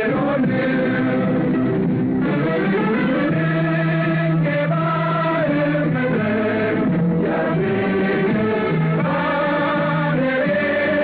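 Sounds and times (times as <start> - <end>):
choir singing: 0.0 - 1.7, 2.3 - 11.0
instrumental accompaniment: 0.0 - 11.0.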